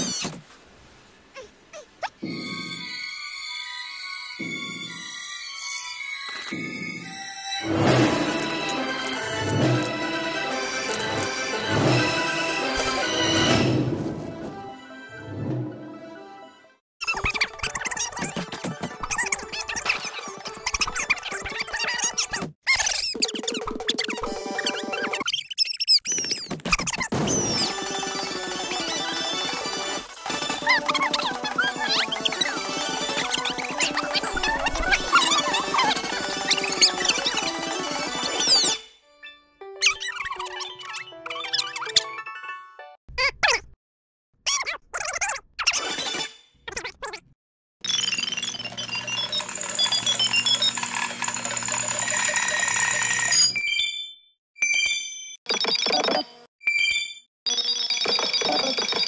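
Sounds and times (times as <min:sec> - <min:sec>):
sped-up cartoon music: 0:02.2 - 0:22.4, 0:27.3 - 0:43.6
high squeaky chirps: 0:38.2 - 0:42.1.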